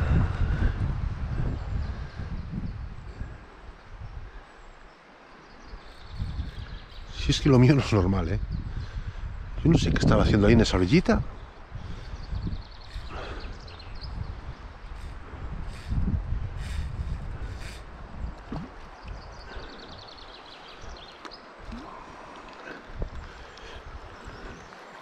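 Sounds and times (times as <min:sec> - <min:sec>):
wind buffeting microphone: 0:00.0 - 0:04.7, 0:05.6 - 0:25.0
flowing river: 0:03.0 - 0:08.3, 0:10.2 - 0:25.0.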